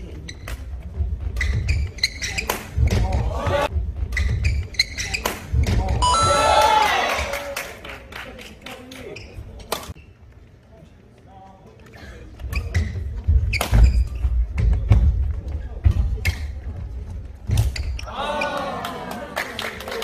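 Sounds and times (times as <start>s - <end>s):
voices rising: 6.0s - 7.1s.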